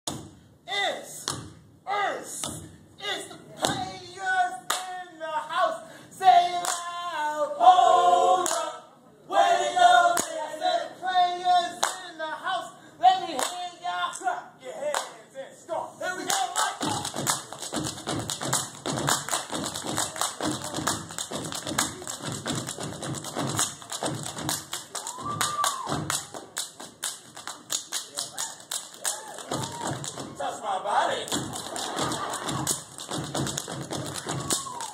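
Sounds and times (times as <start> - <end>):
hands clapping and slapping body: 4.7 - 5.0, 16.2 - 30.3, 31.3 - 34.9
feet stomping on wooden stage: 16.8 - 26.5, 29.5 - 30.4, 31.3 - 34.9
chanted voices: 30.1 - 32.4.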